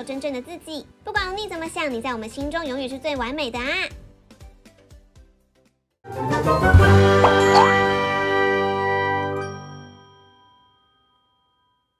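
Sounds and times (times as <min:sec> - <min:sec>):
ringing jingle chord: 0:07.2 - 0:08.1.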